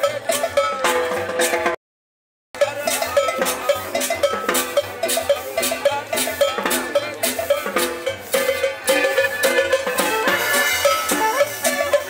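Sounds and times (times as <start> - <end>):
cumbia band playing dance beat: 0.0 - 1.8, 2.6 - 12.0.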